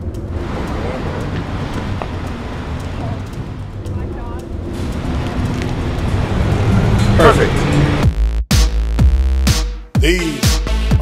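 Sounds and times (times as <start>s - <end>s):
traffic noise: 0.0s - 8.2s.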